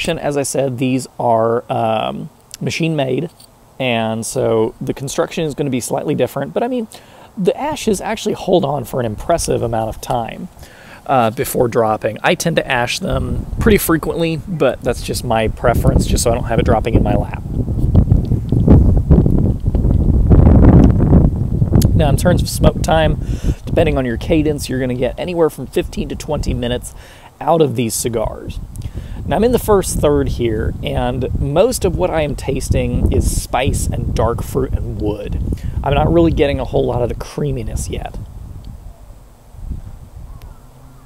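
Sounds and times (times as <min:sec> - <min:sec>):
wind buffeting microphone: 0:07.6 - 0:41.0.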